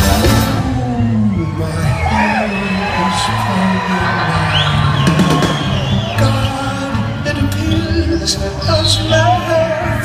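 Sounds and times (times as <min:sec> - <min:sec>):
live rock band playing: 0:00.0 - 0:10.0
crowd whooping and cheering: 0:00.3 - 0:10.0.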